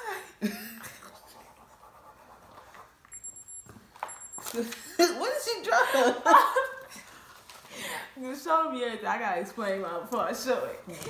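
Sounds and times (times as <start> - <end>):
pens scratching on paper: 1.1 - 3.0.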